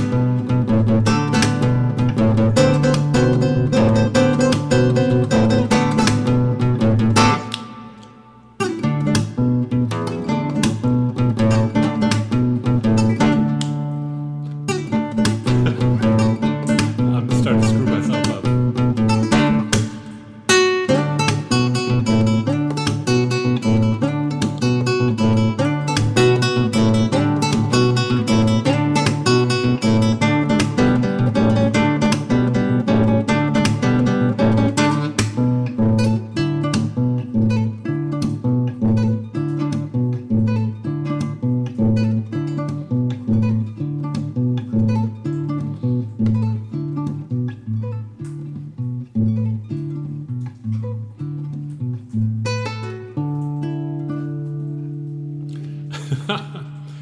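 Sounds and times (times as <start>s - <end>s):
fingerstyle classical guitar: 0.0s - 56.0s.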